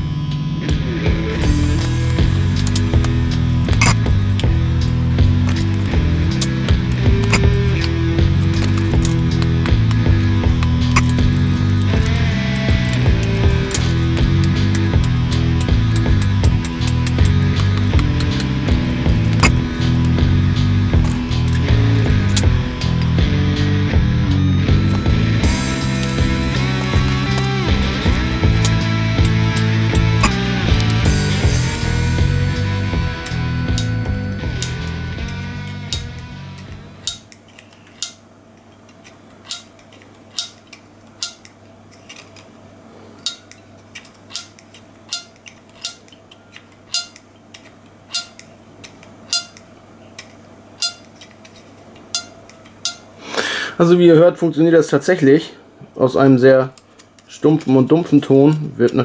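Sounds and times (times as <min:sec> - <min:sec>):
background music with bass: 0:00.0 - 0:37.2
harmonica reeds plucked: 0:00.8 - 0:23.8, 0:24.7 - 0:36.8.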